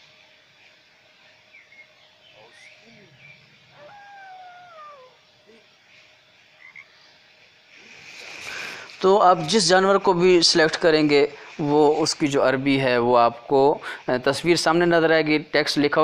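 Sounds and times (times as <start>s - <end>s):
faint chirps: 0.6s - 9.2s
wolf howl: 2.4s - 5.6s.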